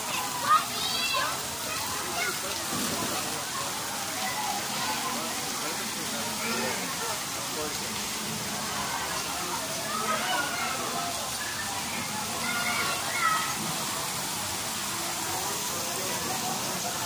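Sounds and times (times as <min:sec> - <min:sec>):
people chattering: 0:00.0 - 0:17.0
waterfall splashing into pool: 0:00.0 - 0:17.0.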